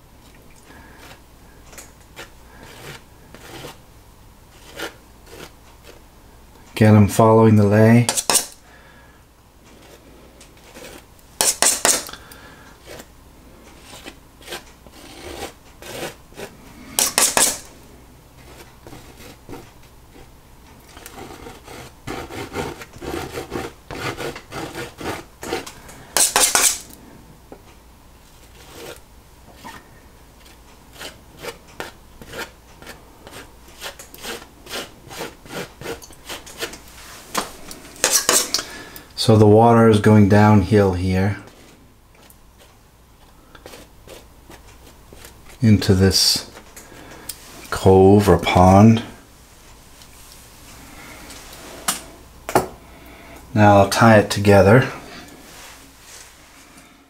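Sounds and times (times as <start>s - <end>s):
palette knife scraping paint: 0.7s - 1.2s, 2.1s - 3.8s, 4.5s - 6.0s, 8.0s - 8.6s, 10.6s - 12.2s, 12.8s - 13.1s, 13.7s - 17.7s, 18.4s - 20.3s, 20.9s - 27.0s, 28.4s - 29.8s, 30.4s - 38.7s, 42.2s - 46.6s.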